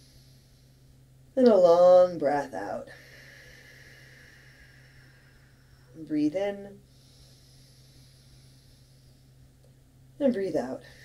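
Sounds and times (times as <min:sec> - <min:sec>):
long exhale of breath: 0:00.0 - 0:01.0, 0:02.9 - 0:06.0, 0:06.7 - 0:09.4
low steady hum: 0:00.0 - 0:11.0.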